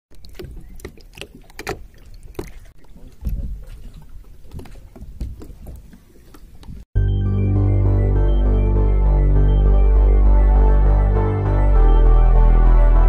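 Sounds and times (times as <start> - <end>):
water splashing against boat: 0.1 - 6.8.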